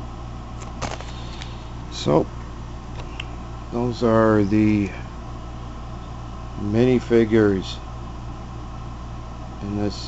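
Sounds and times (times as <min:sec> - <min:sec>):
low room hum: 0:00.0 - 0:10.0
plastic bag crinkle: 0:00.6 - 0:01.5.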